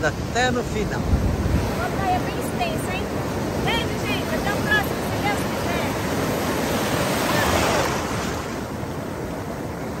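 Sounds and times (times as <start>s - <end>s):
ocean surf breaking: 0.0s - 10.0s.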